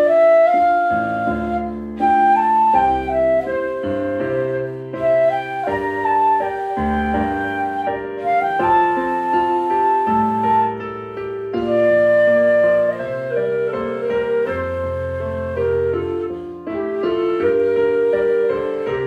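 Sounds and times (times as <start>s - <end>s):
flute melody: 0.0s - 19.0s
piano accompaniment: 0.0s - 19.0s.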